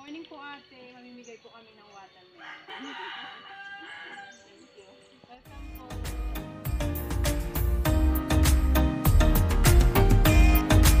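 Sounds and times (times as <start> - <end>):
rooster crowing: 2.4 - 4.6.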